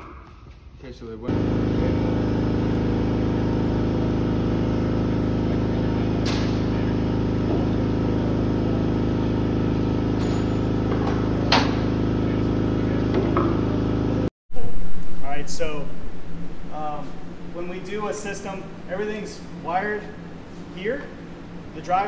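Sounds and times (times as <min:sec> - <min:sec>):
steady machine hum: 0:00.0 - 0:22.0.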